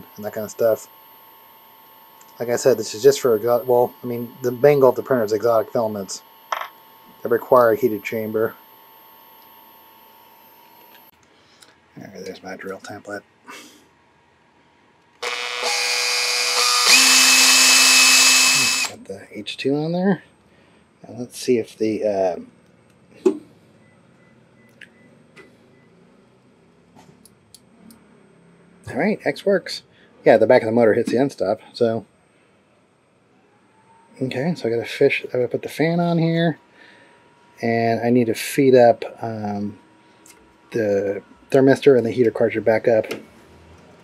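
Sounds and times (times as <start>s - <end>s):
stepper motor high whine: 0.0s - 11.1s, 15.2s - 19.0s
faint steady whine: 0.0s - 44.0s.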